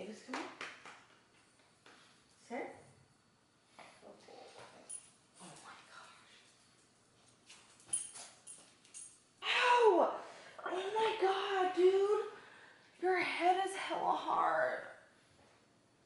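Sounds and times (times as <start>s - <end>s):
dogs scrambling on tile floor: 3.9s - 9.2s.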